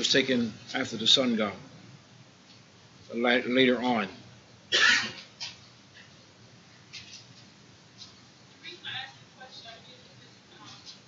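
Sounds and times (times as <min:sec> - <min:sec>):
person coughing: 0:04.7 - 0:05.2.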